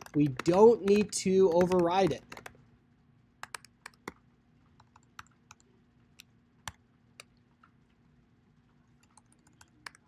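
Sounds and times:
typing on computer keyboard: 0.0s - 2.6s, 3.4s - 4.2s, 4.8s - 5.7s, 9.0s - 10.0s.

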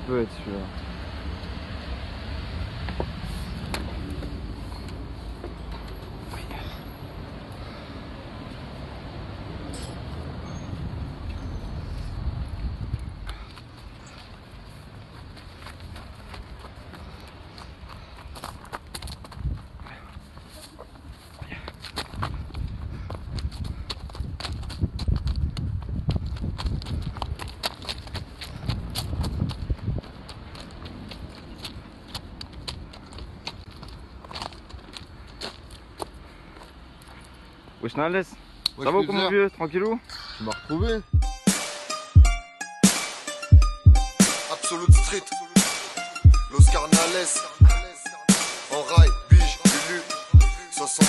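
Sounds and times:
distant traffic: 0.0s - 24.8s, 26.3s - 42.4s
wind rumble on microphone: 9.2s - 13.8s, 18.3s - 34.0s
footsteps crunching on gravel: 12.6s - 37.4s.

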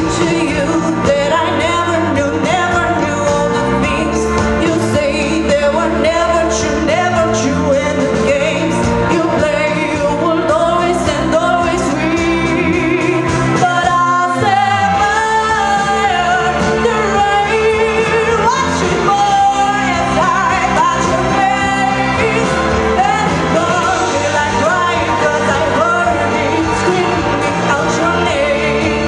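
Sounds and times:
backing track with steady beat: 0.0s - 29.0s.

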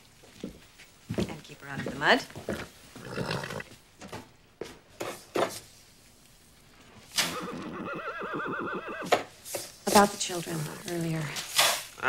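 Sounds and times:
horse neighing: 2.5s - 3.7s, 7.2s - 9.2s
horse whinny with trilling pitch: 7.2s - 9.2s.

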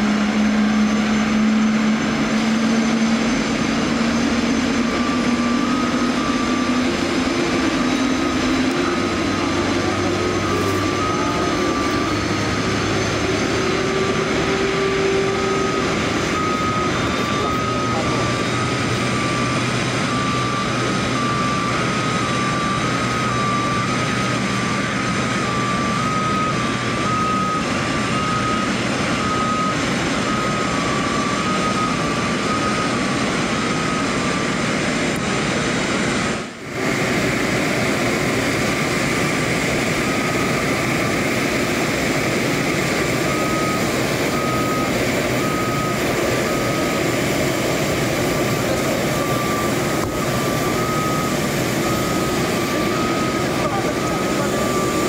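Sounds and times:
two-tone warning beeper: 0.0s - 35.0s, 36.5s - 55.0s
jet turbine roar: 0.0s - 55.0s.

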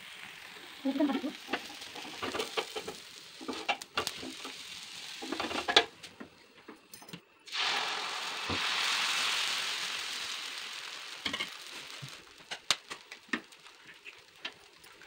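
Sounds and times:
griddle sizzling hiss: 0.0s - 6.8s, 7.4s - 15.0s.

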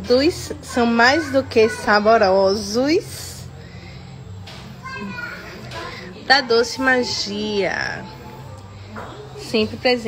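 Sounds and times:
faint background chatter: 0.0s - 10.0s
steady low hum: 0.0s - 10.0s.

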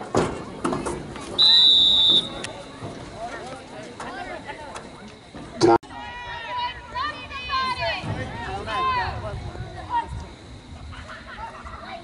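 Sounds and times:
crowd voices: 0.0s - 12.0s
referee's whistle blast: 1.4s - 2.6s.

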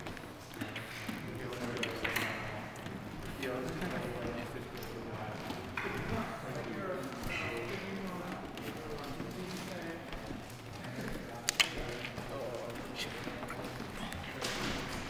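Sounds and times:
people talking: 3.3s - 15.0s.

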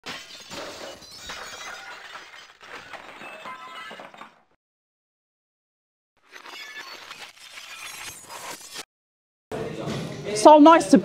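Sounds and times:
pieces clinking and scattering: 0.0s - 4.4s.

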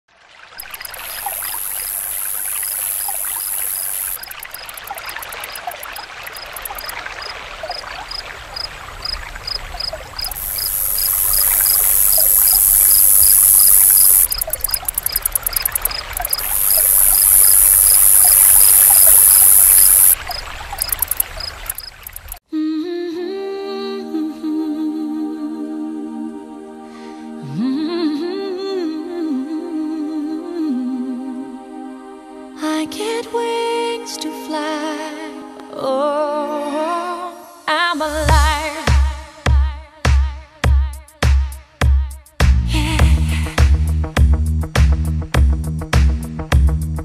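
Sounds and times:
steady repeating chirp: 0.6s - 6.9s, 10.2s - 22.4s
insects stridulating: 0.6s - 22.4s
music: 23.2s - 47.0s.

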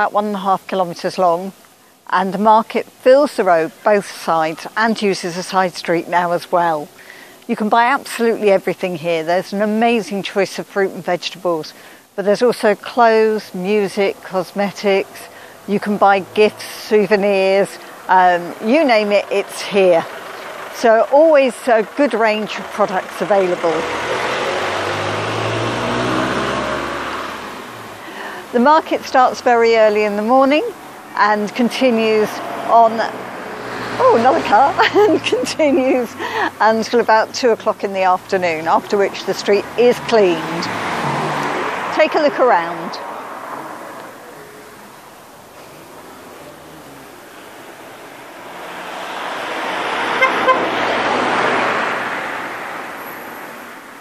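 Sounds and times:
van driving past: 13.3s - 54.0s
car passing by: 14.8s - 28.6s, 32.2s - 36.6s, 38.2s - 54.0s
vehicle horn toots: 50.1s - 50.8s.

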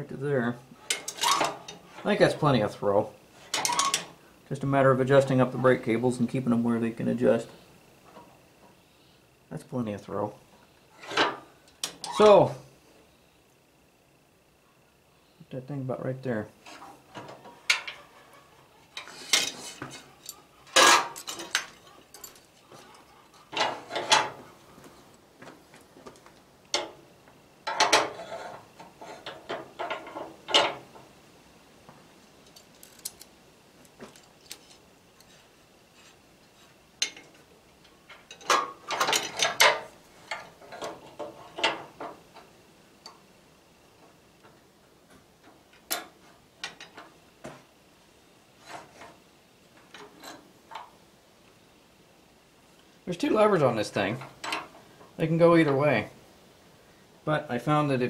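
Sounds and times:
metal parts clinking and rattling: 0.9s - 2.1s, 3.5s - 4.1s, 18.9s - 24.4s, 32.4s - 35.4s, 37.0s - 42.1s.

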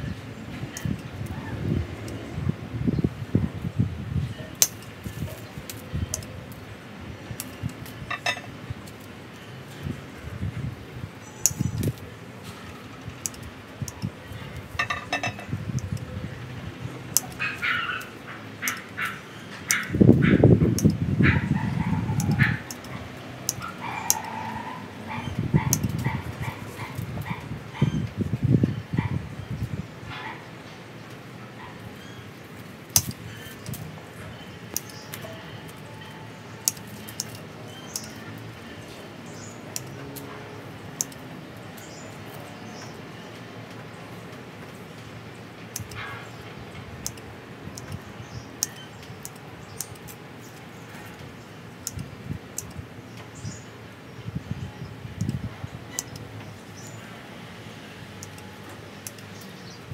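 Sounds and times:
pruning shears snipping twigs: 4.6s - 9.2s, 11.2s - 16.1s, 17.0s - 27.4s, 32.5s - 43.0s, 45.6s - 53.5s.

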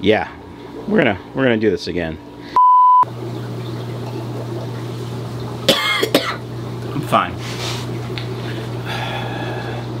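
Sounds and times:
aquarium pumps humming: 0.0s - 10.0s.

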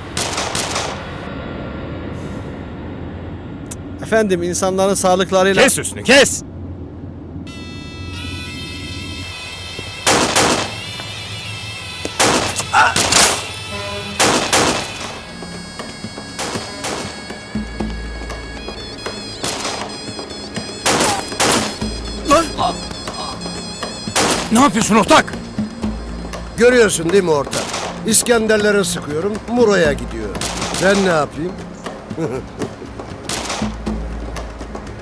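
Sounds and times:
dramatic background music: 0.0s - 35.0s
pistol shots: 10.1s - 10.7s, 12.2s - 13.4s, 14.2s - 15.0s, 20.8s - 21.8s, 33.3s - 33.7s.

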